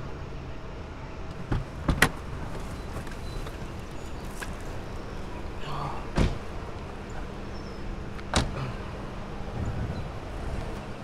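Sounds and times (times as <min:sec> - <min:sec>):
car door shutting: 0:06.1 - 0:06.5, 0:08.2 - 0:08.6.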